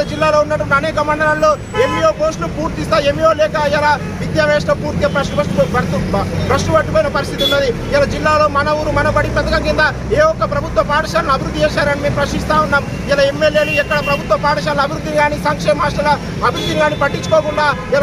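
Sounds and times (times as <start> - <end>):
low rumble of traffic: 0.0 - 18.0
man speaking forcefully: 0.0 - 18.0.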